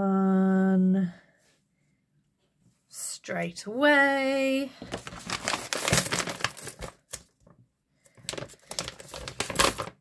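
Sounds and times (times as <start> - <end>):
plastic pouch rustling: 4.8 - 7.3, 8.1 - 10.0
coins clinking: 5.1 - 7.2.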